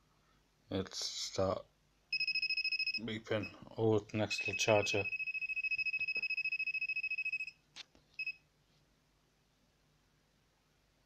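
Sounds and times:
fast-pulsing high beeping: 2.2 - 3.0, 4.4 - 7.5
short beep: 4.4 - 7.6.

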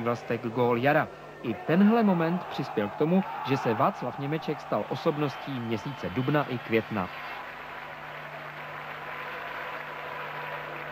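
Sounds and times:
low constant hum: 0.0 - 10.9.

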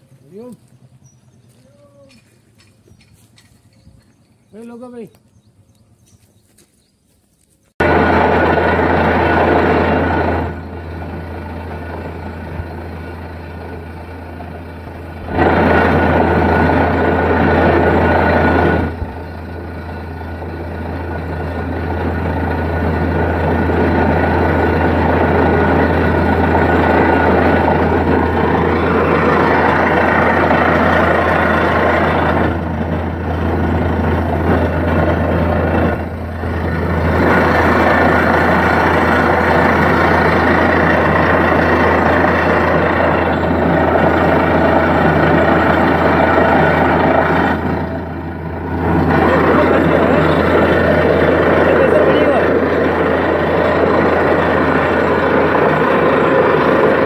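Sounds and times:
drilling rig engine drone: 7.8 - 57.0.

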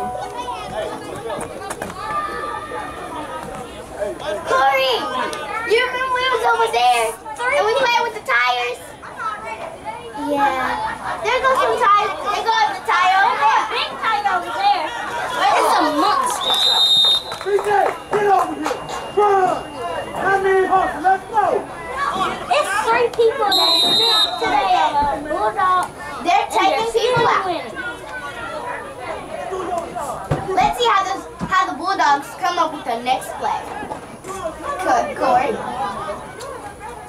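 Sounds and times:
children chattering and calling: 0.0 - 16.8, 19.0 - 37.0
high whistle blasts: 16.4 - 20.2, 23.5 - 24.6.

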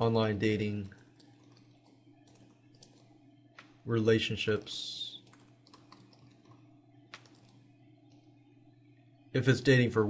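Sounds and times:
faint keyboard keystrokes: 4.5 - 8.3.

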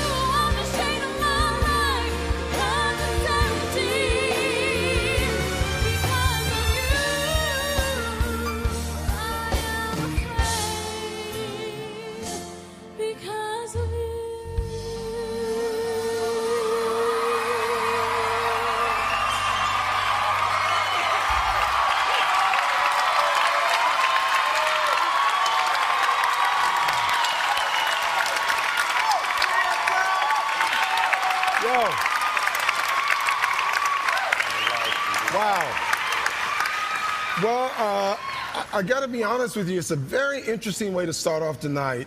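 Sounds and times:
woman singing: 0.0 - 19.1
band playing pop ballad: 0.0 - 21.8
audience applauding and cheering: 16.4 - 40.9
audience whooping: 16.5 - 38.9.

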